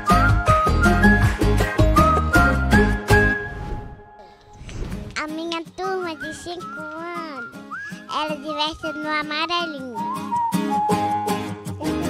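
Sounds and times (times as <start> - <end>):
background music with whistle-like line: 0.0 - 4.2, 5.8 - 12.0
child speaking into a microphone: 5.2 - 10.1.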